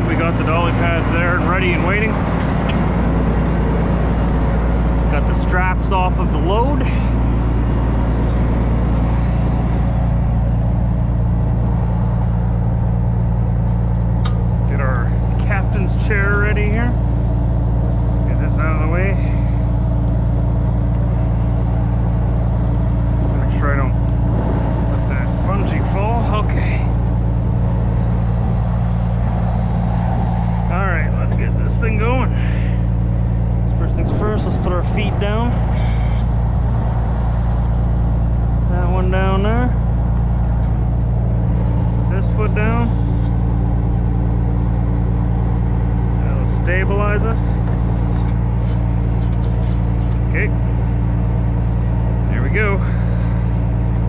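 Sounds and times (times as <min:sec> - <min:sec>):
diesel truck engine running: 0:00.0 - 0:54.0.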